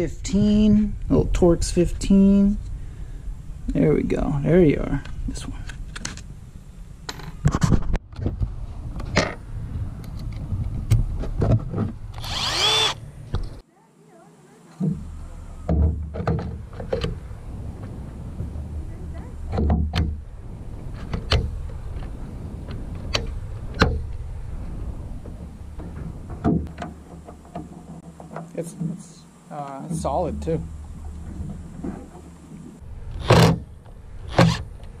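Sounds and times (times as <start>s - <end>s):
wind rumble on microphone: 7.4s - 12.4s, 15.7s - 26.8s.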